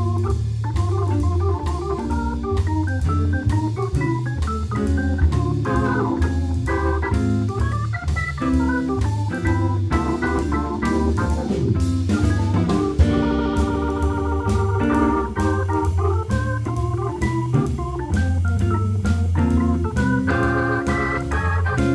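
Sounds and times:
bass line: 0.0 - 21.9
drum kit and cymbals: 0.0 - 21.9
electric guitar: 0.0 - 21.9
organ lead line: 0.0 - 21.9.

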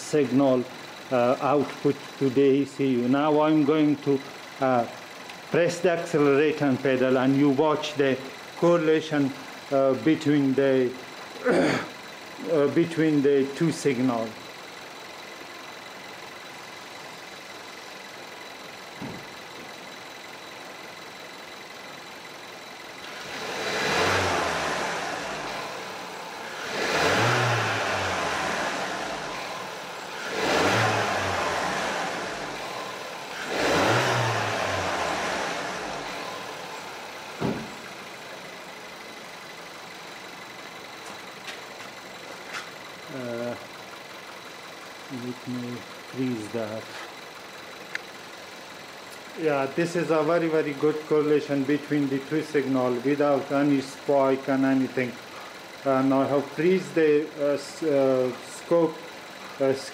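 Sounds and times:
car engine idling and revving: 0.0 - 59.9.

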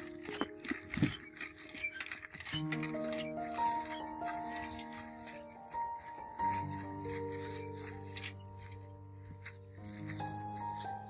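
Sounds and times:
background music: 0.0 - 11.0
goats feeding on dry stalks: 0.0 - 11.0.

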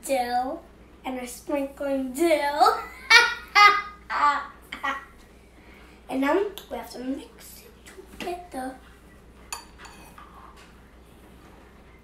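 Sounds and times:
metal spoon clinking on ceramic bowl: 9.5 - 10.1.

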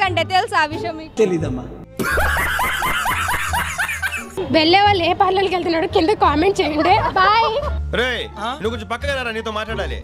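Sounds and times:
young woman laughing: 2.0 - 4.4.

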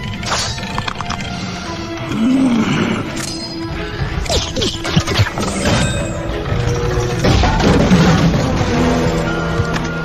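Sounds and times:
tense film music: 0.0 - 10.0.

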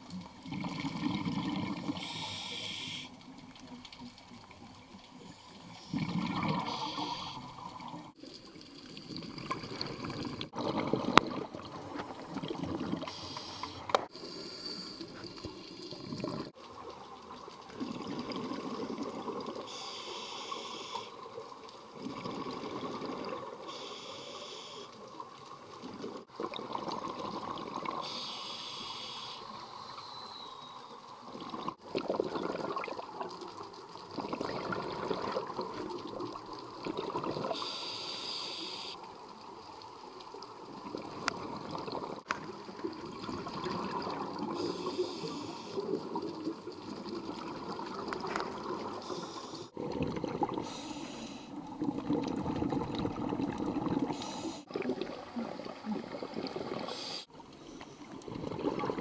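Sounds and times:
bubbling exhalations: 0.4 - 2.2, 5.8 - 8.2, 15.0 - 16.6, 31.3 - 33.4, 34.1 - 37.8, 40.8 - 57.4, 58.2 - 59.0
hissing regulator inhalation: 2.0 - 3.2, 5.8 - 7.5, 13.0 - 15.5, 19.7 - 21.2, 23.7 - 25.0, 28.0 - 30.7, 37.5 - 39.0, 44.5 - 46.0, 48.9 - 49.8, 50.6 - 51.6, 54.1 - 54.7, 56.8 - 58.0.

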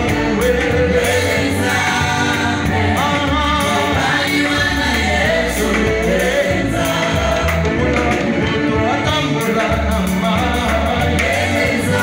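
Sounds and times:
instrumental accompaniment with bass: 0.0 - 12.0
man singing gospel: 0.0 - 12.0.

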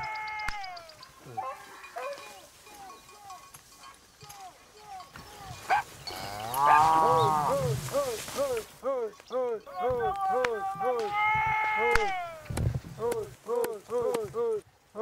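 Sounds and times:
cow mooing: 5.4 - 7.8.

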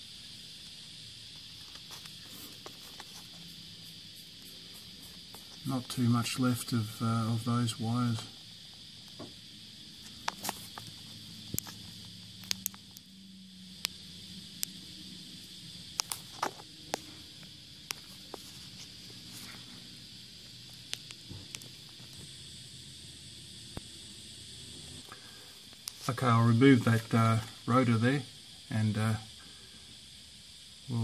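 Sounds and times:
steady high-pitched hiss: 0.0 - 31.0.

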